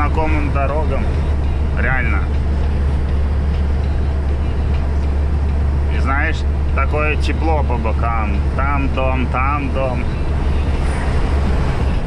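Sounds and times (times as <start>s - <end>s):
road and tyre noise: 0.0s - 12.0s
truck engine drone: 0.0s - 12.0s.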